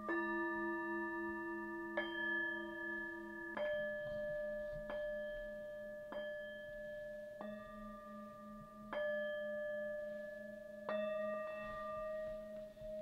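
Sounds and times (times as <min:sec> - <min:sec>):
singing bowl struck with mallet: 0:00.0 - 0:13.0.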